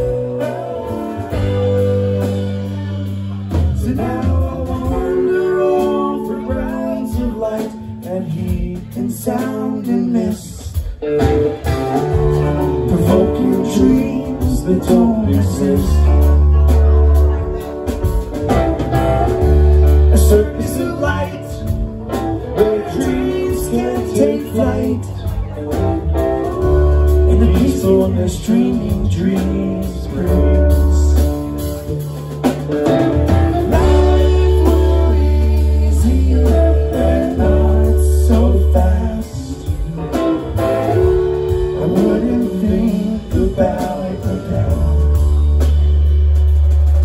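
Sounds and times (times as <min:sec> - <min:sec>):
live band playing: 0:00.0 - 0:47.0
long held bass notes: 0:00.0 - 0:47.0.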